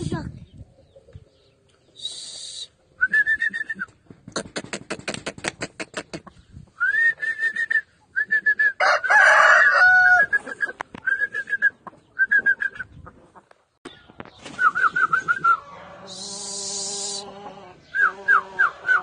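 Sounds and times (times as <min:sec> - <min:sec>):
chickens clucking: 0:00.1 - 0:02.0, 0:04.3 - 0:06.7, 0:08.8 - 0:19.0.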